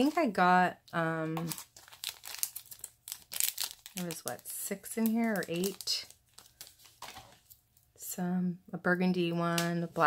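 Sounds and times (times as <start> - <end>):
plastic bag crinkling: 0.9 - 7.9.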